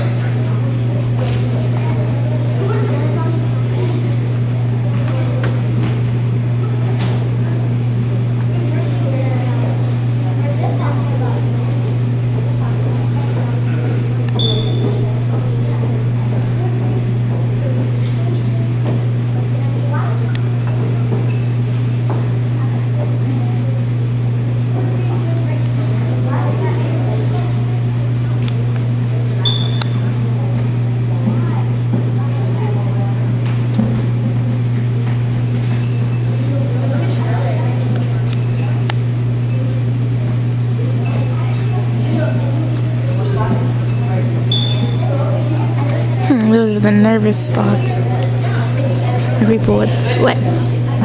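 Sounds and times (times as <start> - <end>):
faint murmuring voices: 0.0 - 51.0
loud steady low hum: 0.0 - 51.0
short high-pitched tone: 14.4 - 15.0, 29.4 - 30.0, 44.5 - 45.1.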